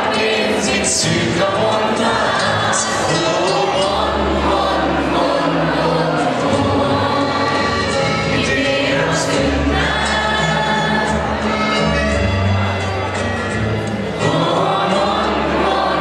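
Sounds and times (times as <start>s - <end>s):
students singing together: 0.0s - 11.6s, 14.0s - 16.0s.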